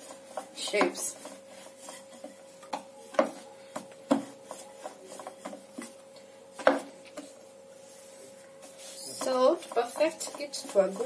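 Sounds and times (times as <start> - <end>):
rolling pin rubbing on dough: 0.0 - 11.0
rolling pin knocking board: 6.6 - 7.2.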